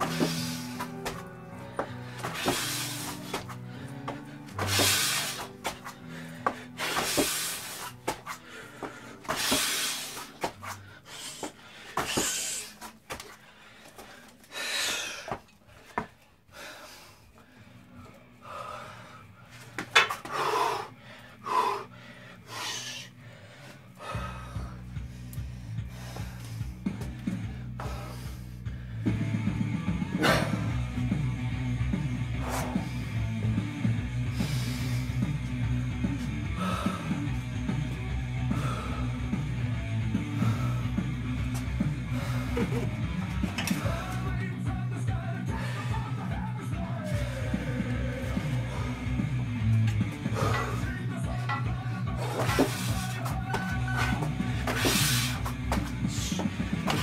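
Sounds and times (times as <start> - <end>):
background music: 0.0 - 13.6, 14.5 - 57.0
man breathing hard: 0.0 - 29.2, 30.2 - 31.0, 32.2 - 44.4, 45.4 - 57.0.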